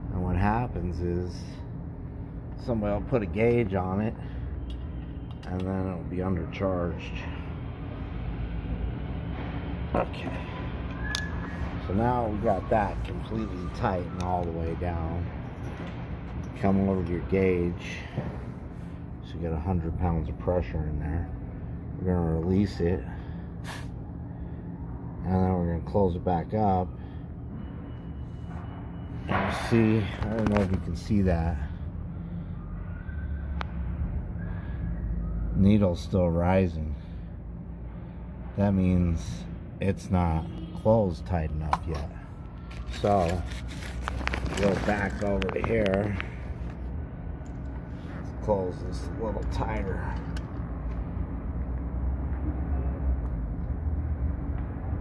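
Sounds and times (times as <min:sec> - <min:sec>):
low machine hum: 0:00.0 - 0:55.0.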